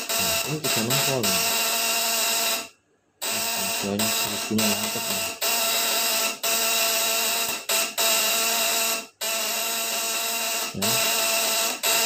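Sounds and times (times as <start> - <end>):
contact breaker buzzing: 0.0 - 12.0
electrical arcing: 0.0 - 12.0.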